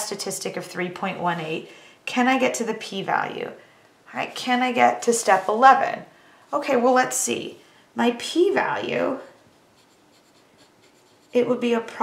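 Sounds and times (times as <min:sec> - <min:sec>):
pen scratching on paper: 0:09.0 - 0:11.7.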